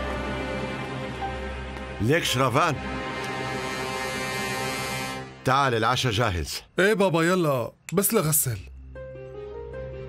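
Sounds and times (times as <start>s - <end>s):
held steady music chord: 0.0s - 5.5s.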